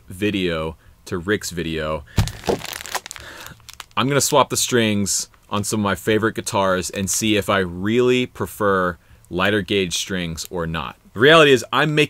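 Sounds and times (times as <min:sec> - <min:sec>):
foil packets crinkling: 0:02.2 - 0:04.4.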